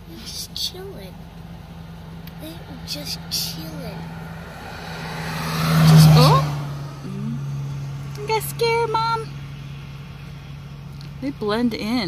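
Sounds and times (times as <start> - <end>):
low engine hum: 0.0 - 12.0
vehicle passing by: 0.6 - 12.0.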